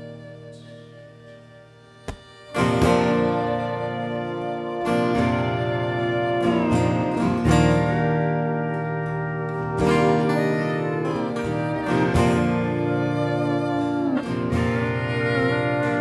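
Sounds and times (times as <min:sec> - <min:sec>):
acoustic guitars strumming: 0:00.0 - 0:16.0
fiddle bowing sustained notes: 0:00.0 - 0:16.0.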